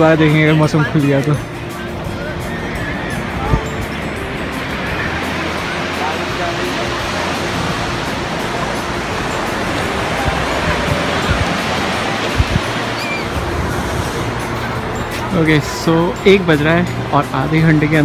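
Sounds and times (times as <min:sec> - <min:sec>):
faint distant voices: 0:00.0 - 0:18.0
ocean surf breaking on sand: 0:00.0 - 0:18.0.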